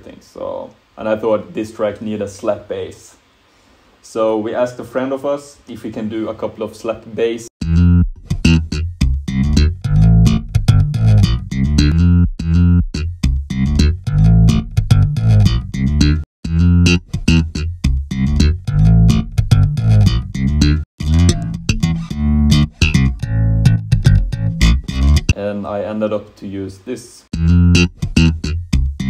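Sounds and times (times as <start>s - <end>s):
slap bass guitar: 7.6s - 25.4s, 27.3s - 29.0s.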